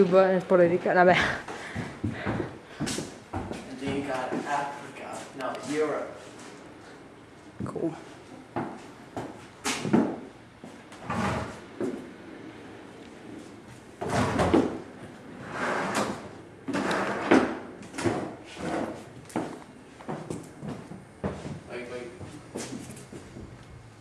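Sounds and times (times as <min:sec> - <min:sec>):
wooden drawers scraping and knocking: 0:11.0 - 0:11.7.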